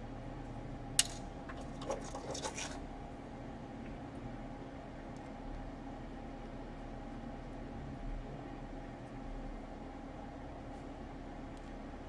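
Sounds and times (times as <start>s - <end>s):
steady low hum: 0.0s - 12.0s
small clicks and scrapes: 1.0s - 2.9s.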